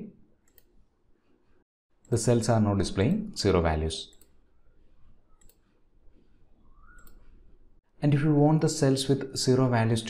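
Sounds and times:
computer mouse clicks: 0.4 - 0.8, 4.1 - 4.4, 5.4 - 5.7, 6.9 - 7.4.

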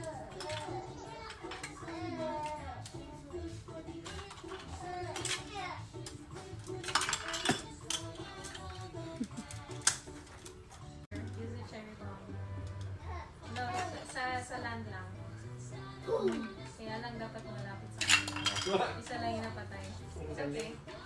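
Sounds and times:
background music: 0.0 - 21.0.

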